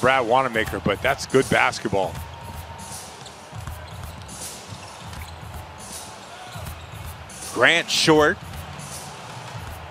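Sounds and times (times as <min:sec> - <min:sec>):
sneaker squeaks: 0:02.2 - 0:07.4.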